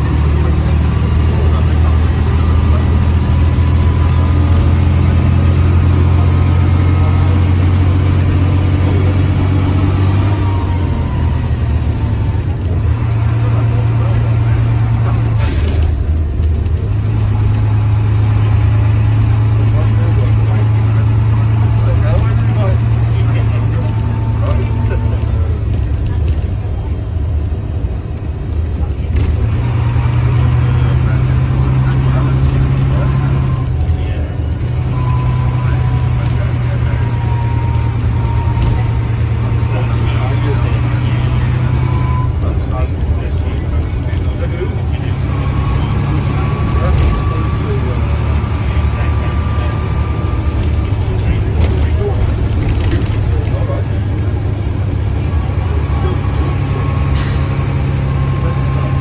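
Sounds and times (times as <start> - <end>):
bus diesel engine droning: 0.0 - 59.0.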